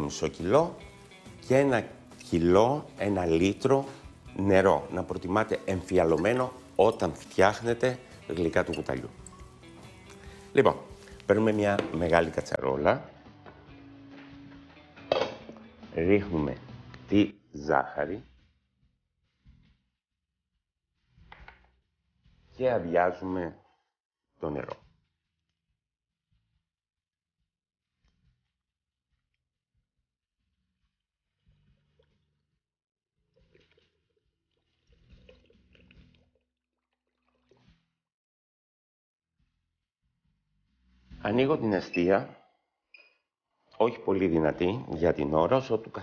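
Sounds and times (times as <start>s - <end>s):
water poured into a pot: 0.5s - 12.4s, 31.4s - 32.4s, 33.2s - 37.9s.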